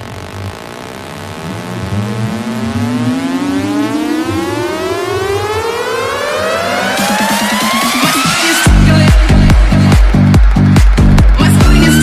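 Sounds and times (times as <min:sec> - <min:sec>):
synth riser gliding upward: 0:00.0 - 0:08.7
pulsing bass line: 0:00.0 - 0:12.0.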